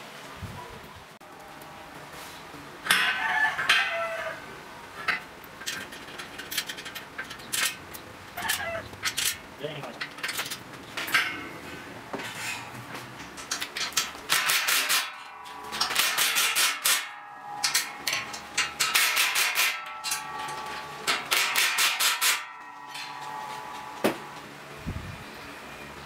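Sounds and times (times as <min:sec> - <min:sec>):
metal parts being handled: 0:05.0 - 0:24.6.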